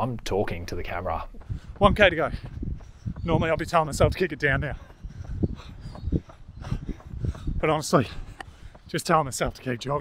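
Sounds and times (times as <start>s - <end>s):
person breathing hard: 4.7s - 8.9s.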